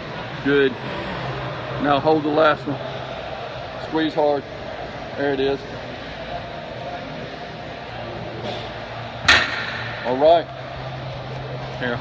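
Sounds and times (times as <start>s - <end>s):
gym background hum: 0.0s - 12.0s.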